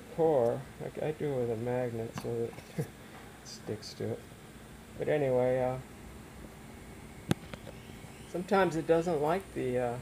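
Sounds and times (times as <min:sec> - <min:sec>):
faint steady background hiss: 0:00.0 - 0:10.0.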